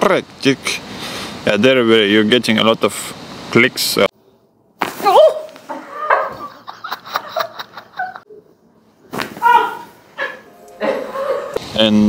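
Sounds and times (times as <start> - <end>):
woman's sliding vocal cry: 9.3 - 11.6.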